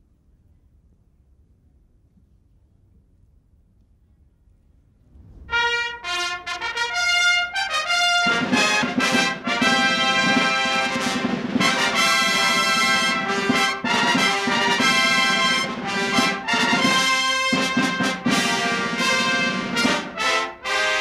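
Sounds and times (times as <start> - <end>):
lower brass: 5.1 - 21.0
herald trumpet fanfare: 5.5 - 21.0.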